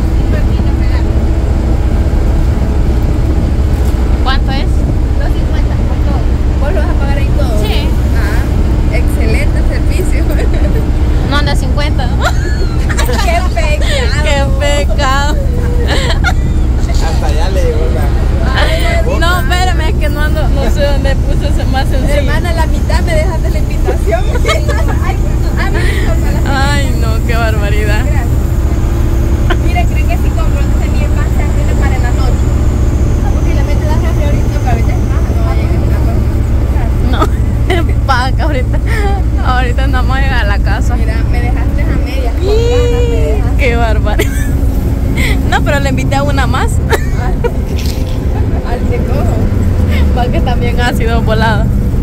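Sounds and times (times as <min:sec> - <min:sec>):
bus engine and road rumble: 0:00.0 - 0:52.0
passengers talking: 0:00.0 - 0:52.0.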